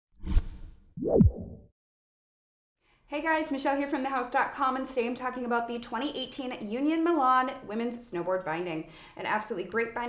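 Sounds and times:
whoosh sound effects: 0:00.2 - 0:01.6.

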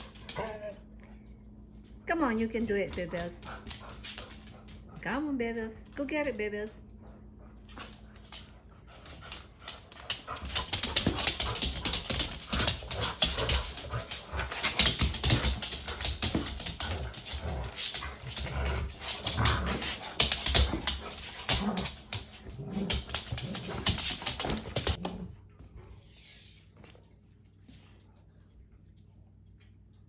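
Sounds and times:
dogs whimpering: 0:00.3 - 0:00.9
claws clicking on hard floor: 0:03.1 - 0:04.9, 0:07.8 - 0:25.0.

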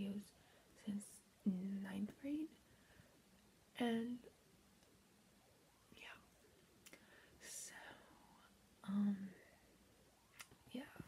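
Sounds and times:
girl whispering: 0:06.0 - 0:06.3, 0:10.7 - 0:11.0.

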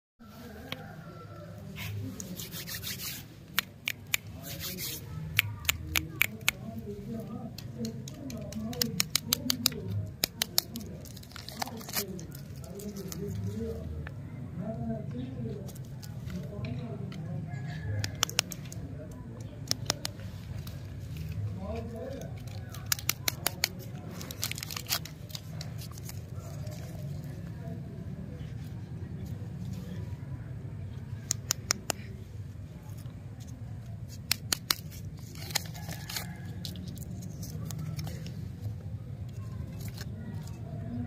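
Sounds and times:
plastic wrappers crinkling: 0:07.2 - 0:13.8, 0:20.3 - 0:27.4, 0:34.1 - 0:38.5.

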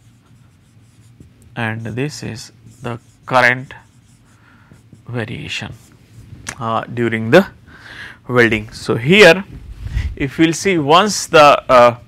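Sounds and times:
marker pen writing on whiteboard: 0:00.0 - 0:06.2
man talking: 0:01.6 - 0:03.9, 0:05.0 - 0:05.8, 0:06.5 - 0:07.6, 0:08.3 - 0:09.5, 0:10.1 - 0:12.0.

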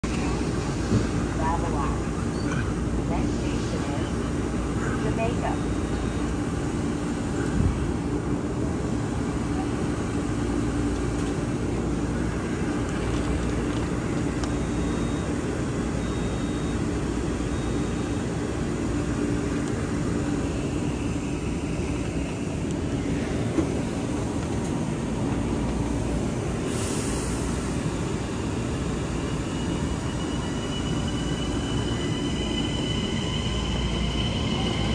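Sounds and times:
electric train humming: 0:00.0 - 0:34.9
train pulling out: 0:00.0 - 0:34.9.

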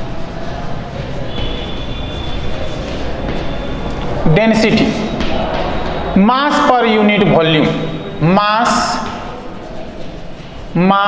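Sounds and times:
chalk scratching on blackboard: 0:00.0 - 0:04.0, 0:08.8 - 0:10.8
noisy background hum: 0:00.0 - 0:11.0.

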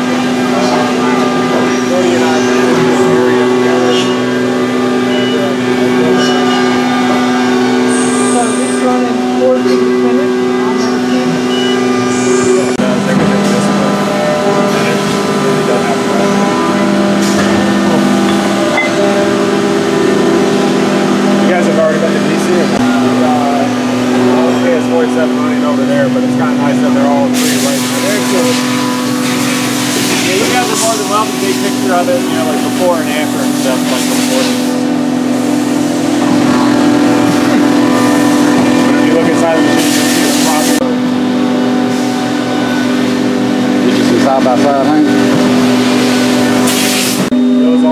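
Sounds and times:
indistinct voices: 0:00.0 - 0:47.9
machine whines: 0:00.0 - 0:47.9.

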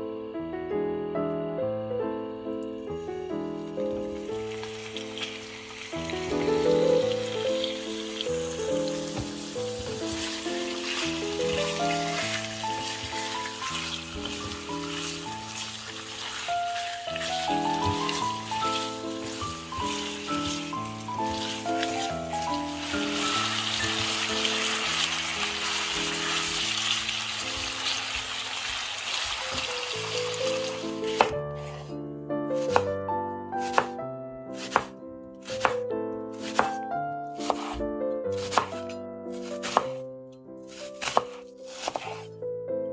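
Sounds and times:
background music of picked notes: 0:00.0 - 0:42.9
meat sizzling in oil: 0:03.5 - 0:31.3
knife slicing on wooden board: 0:33.7 - 0:33.9, 0:34.6 - 0:35.8, 0:36.4 - 0:36.8, 0:37.4 - 0:37.8, 0:38.4 - 0:38.8, 0:39.4 - 0:40.0, 0:40.7 - 0:42.3.

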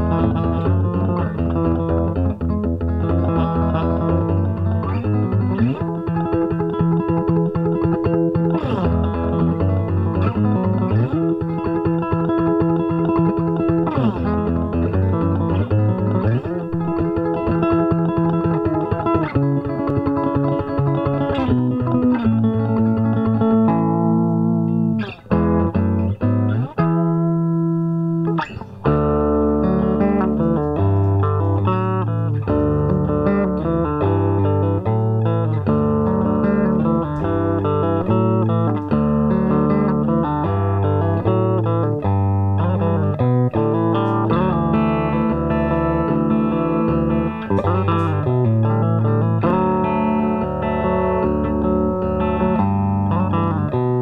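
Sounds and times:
electric guitar riff: 0:00.0 - 0:54.0.

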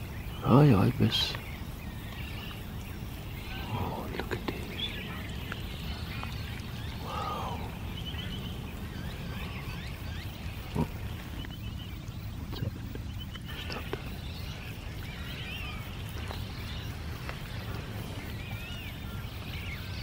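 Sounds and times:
bird chirps and trills: 0:00.0 - 0:20.0.

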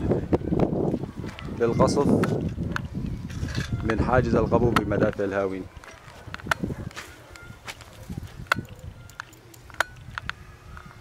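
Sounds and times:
footsteps on rubble and stones: 0:00.6 - 0:10.2.

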